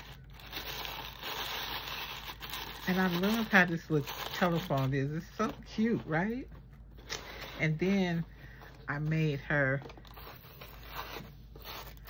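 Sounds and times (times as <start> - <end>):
tissue paper rustling: 0.0 - 7.6
person speaking: 2.8 - 10.3.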